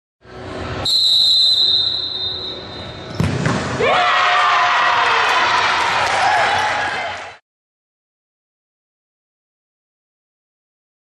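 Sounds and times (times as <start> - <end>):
referee's whistle blast: 0.8 - 3.1
ball struck with a thud: 3.1 - 3.8
people shouting and cheering: 3.6 - 7.4.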